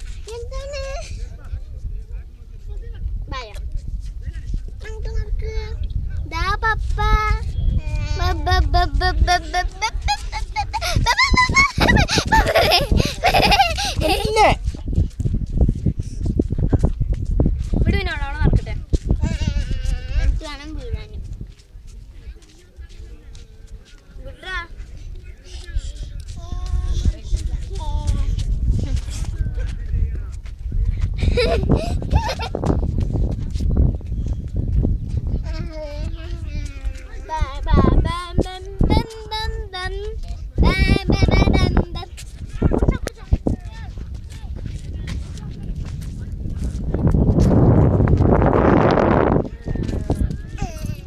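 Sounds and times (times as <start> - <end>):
wind rumble on microphone: 0.0 - 51.0
young children's voices: 0.2 - 1.3, 4.8 - 14.7, 35.4 - 45.7, 50.5 - 51.0.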